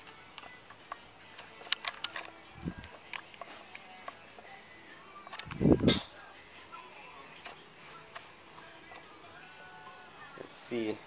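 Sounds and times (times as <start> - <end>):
camera handling clicks: 1.7 - 2.3.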